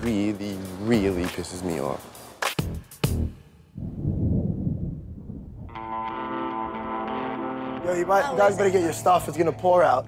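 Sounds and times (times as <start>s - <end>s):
thunder rumble: 3.8s - 6.7s
held musical chord: 5.7s - 10.0s.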